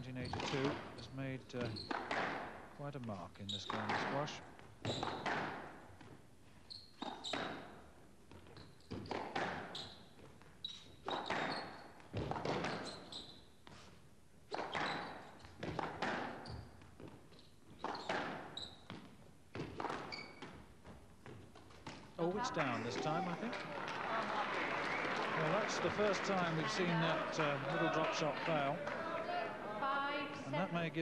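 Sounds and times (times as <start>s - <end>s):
shoes squeaking on court floor: 0.2s - 2.4s, 3.1s - 23.5s
squash ball hitting rackets and walls: 1.6s - 2.6s, 3.7s - 6.2s, 7.0s - 13.1s, 14.5s - 22.2s.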